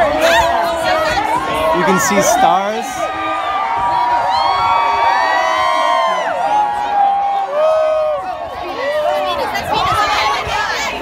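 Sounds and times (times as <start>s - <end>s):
crowd cheering and whooping: 0.0s - 11.0s.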